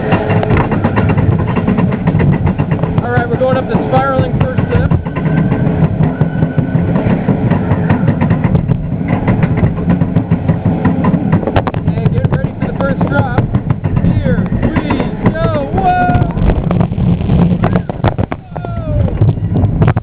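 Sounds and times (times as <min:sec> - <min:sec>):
roller coaster rattling on track: 0:00.0 - 0:20.0.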